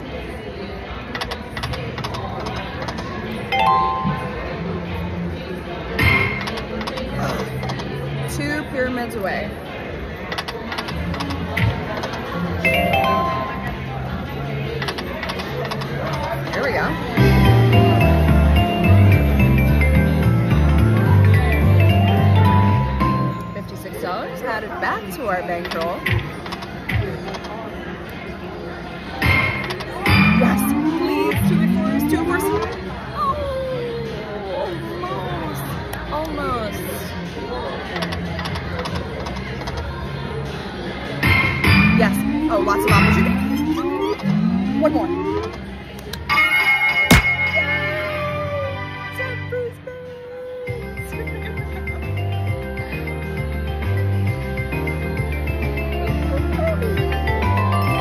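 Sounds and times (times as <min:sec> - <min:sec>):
casino background chatter: 0:00.0 - 0:58.0
slot machine electronic music: 0:03.4 - 0:04.6, 0:12.6 - 0:14.0, 0:17.2 - 0:23.6, 0:30.1 - 0:33.0, 0:41.3 - 0:45.9, 0:51.5 - 0:58.0
electronic game music and tones: 0:03.5 - 0:04.5, 0:12.7 - 0:13.9, 0:30.1 - 0:32.9, 0:41.6 - 0:45.8
short chiming tones: 0:03.5 - 0:04.6
slot machine reels spinning: 0:30.1 - 0:32.8, 0:41.8 - 0:45.7.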